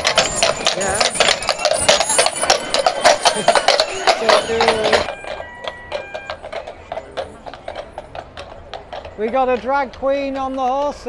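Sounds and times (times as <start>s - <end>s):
horse hooves on pavement: 0.0s - 11.0s.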